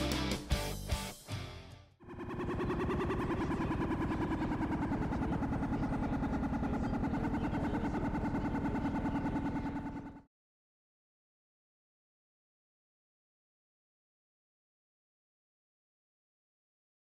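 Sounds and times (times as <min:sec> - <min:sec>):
rapidly pulsing buzzing drone: 0:02.0 - 0:10.3.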